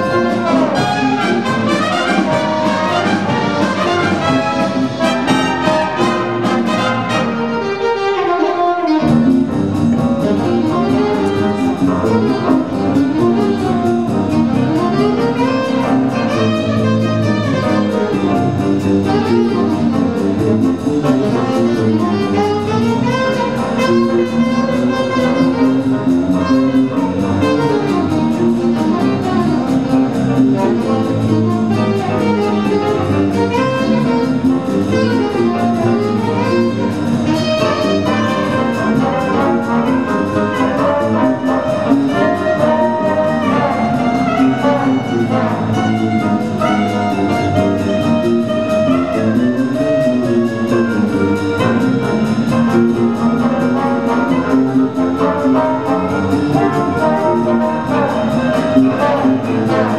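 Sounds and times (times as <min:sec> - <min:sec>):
big band jazz: 0:00.0 - 0:59.9.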